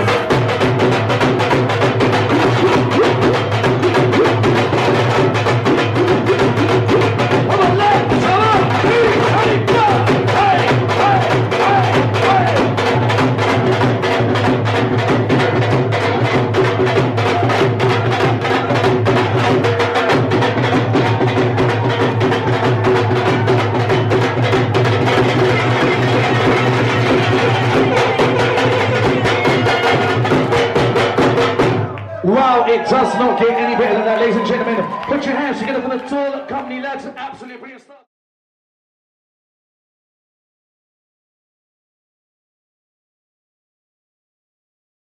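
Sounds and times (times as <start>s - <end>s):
dhol drums playing fast rhythm: 0.0s - 33.2s.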